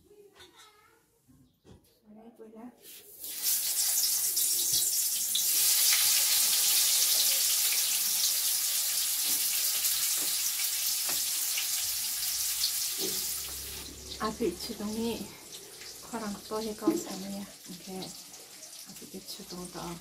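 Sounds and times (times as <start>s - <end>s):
food sizzling in hot oil: 2.9s - 20.0s.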